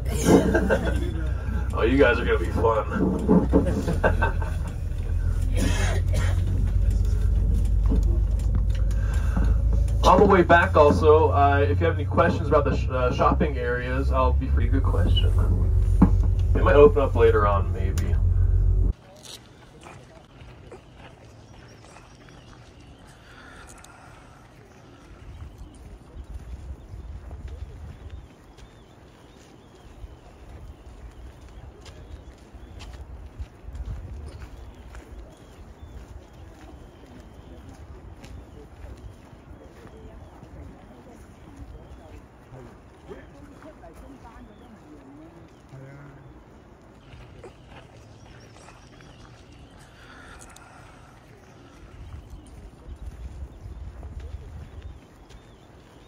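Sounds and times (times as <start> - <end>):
wind rumble on microphone: 0.0 - 19.0, 24.9 - 44.9, 51.4 - 56.0
distant murmur of voices: 0.0 - 56.0
light clicks and crunches: 17.8 - 56.0.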